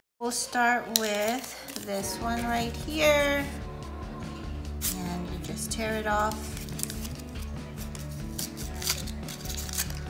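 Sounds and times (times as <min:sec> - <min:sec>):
background music: 0:00.2 - 0:10.0
foil packet crinkling and tearing: 0:06.3 - 0:10.0.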